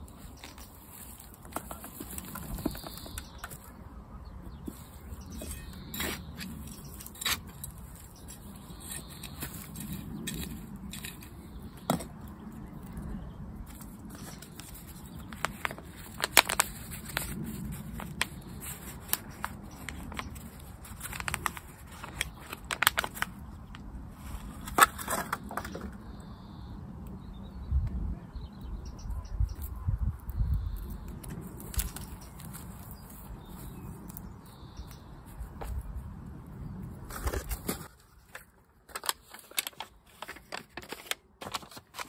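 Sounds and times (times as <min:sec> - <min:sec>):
plastic pot crinkling and crackling: 0:00.0 - 0:03.8, 0:04.7 - 0:26.0, 0:30.8 - 0:34.4, 0:37.1 - 0:42.0.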